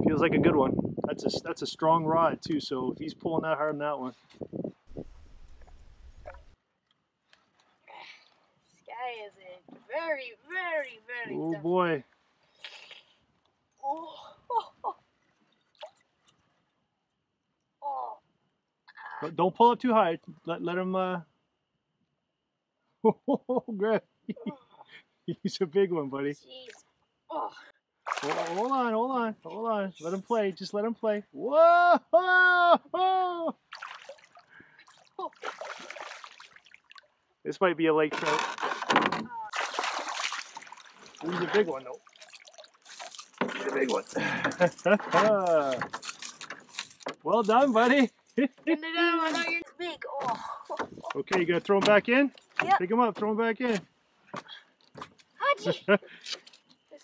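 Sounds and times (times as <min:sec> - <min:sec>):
background noise: 0:00.0 - 0:57.0
fish thrashing and splashing: 0:28.1 - 0:28.7, 0:33.7 - 0:37.1, 0:39.5 - 0:45.0
person exclaiming: 0:31.4 - 0:33.6.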